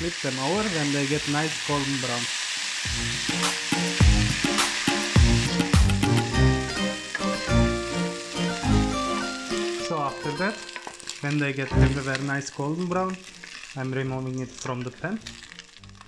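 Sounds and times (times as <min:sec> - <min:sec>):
chicken sizzling in oil: 0:00.0 - 0:16.0
background music: 0:02.9 - 0:13.7.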